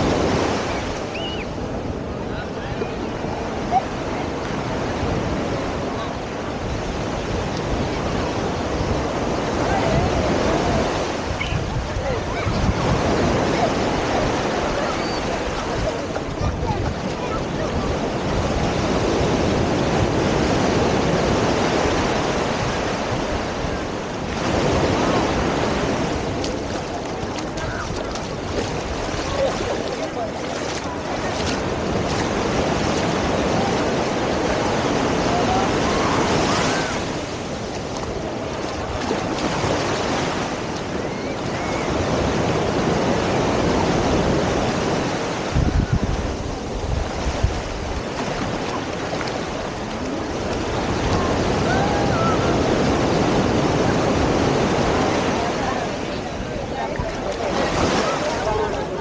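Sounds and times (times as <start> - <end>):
small waves breaking on sand: 0.0 - 59.0.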